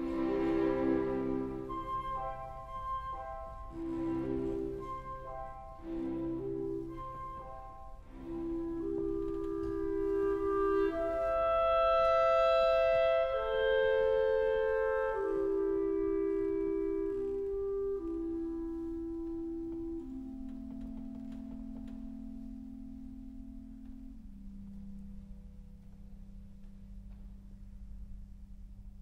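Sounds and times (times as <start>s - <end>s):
two clarinets playing: 0.0s - 20.7s.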